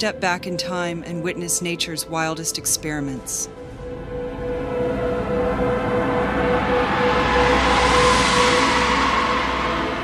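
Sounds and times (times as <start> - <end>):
dark ambient drone: 0.0 - 10.0
rushing whoosh: 3.7 - 10.0.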